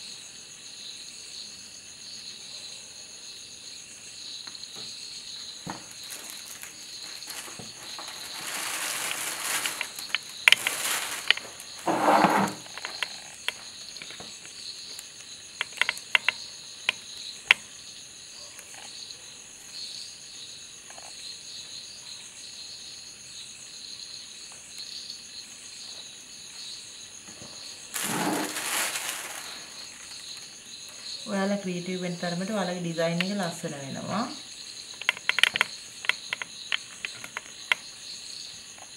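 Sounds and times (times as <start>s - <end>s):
crickets chirring: 0.0s - 38.9s
rustling: 5.7s - 14.4s, 27.3s - 30.8s.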